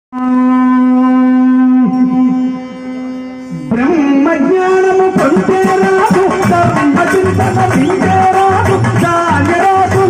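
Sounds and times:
man singing a long note: 0:00.1 - 0:10.0.

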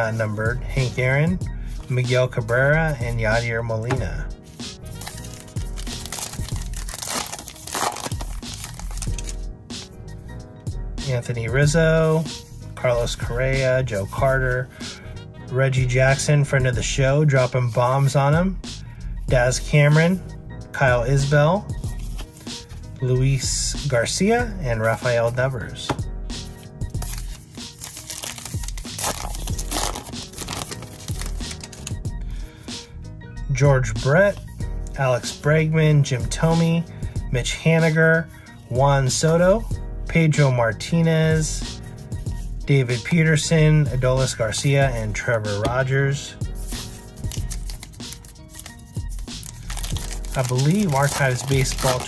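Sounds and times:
background music: 0:00.0 - 0:52.0
wrapper tearing and crinkling: 0:05.0 - 0:09.4, 0:27.0 - 0:31.9, 0:47.2 - 0:52.0.

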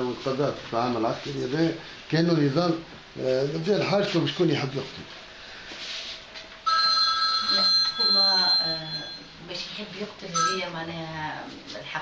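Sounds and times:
steady electronic ringing tone: 0:06.6 - 0:09.6, 0:10.3 - 0:11.0.

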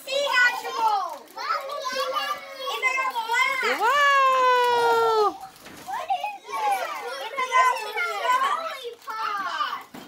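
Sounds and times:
children's excited voices: 0:00.0 - 0:10.0.

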